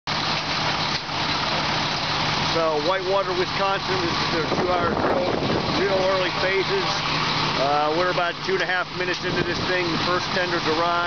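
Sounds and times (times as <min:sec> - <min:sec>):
diesel engines idling: 0:00.1 - 0:11.0
wind noise on microphone: 0:04.3 - 0:06.3.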